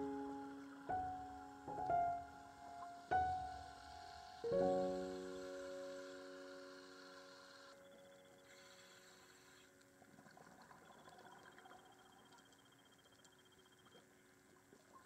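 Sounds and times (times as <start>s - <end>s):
piano chord ringing: 0.0s - 8.4s.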